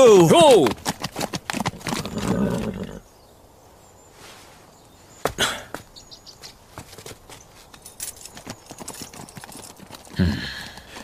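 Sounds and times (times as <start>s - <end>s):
hoof clops on stone: 6.8s - 11.0s.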